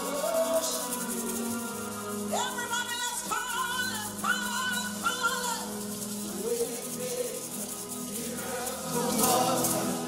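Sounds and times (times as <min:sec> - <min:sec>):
woman singing into a microphone: 0:02.1 - 0:05.7.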